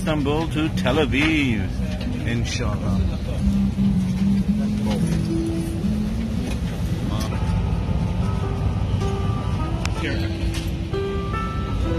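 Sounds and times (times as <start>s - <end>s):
air-conditioning noise: 0.0s - 11.9s
airliner cabin engine rumble: 0.0s - 11.9s
background music: 0.0s - 11.9s.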